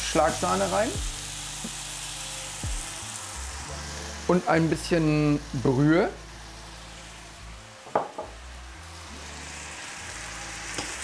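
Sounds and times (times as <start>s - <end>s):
sauce sizzling in a frying pan: 0.0s - 11.0s.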